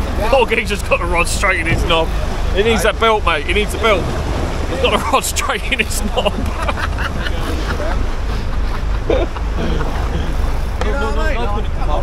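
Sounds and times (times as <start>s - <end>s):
boat engine rumble: 0.0s - 12.0s
men talking: 0.0s - 12.0s.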